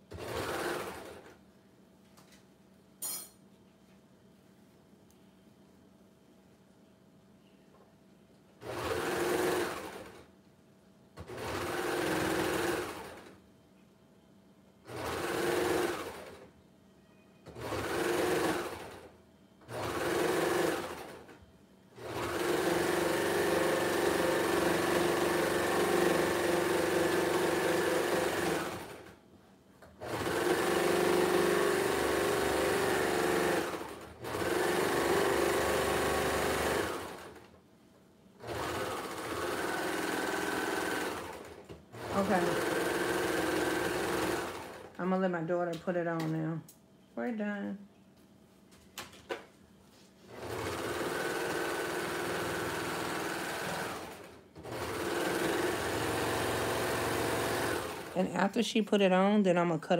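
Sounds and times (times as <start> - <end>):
serger machine stitching fabric: 0.1 - 1.4, 8.6 - 10.3, 11.2 - 13.4, 14.9 - 16.5, 17.5 - 19.1, 19.7 - 21.4, 22.0 - 29.2, 30.0 - 37.5, 38.4 - 45.0, 50.3 - 58.2.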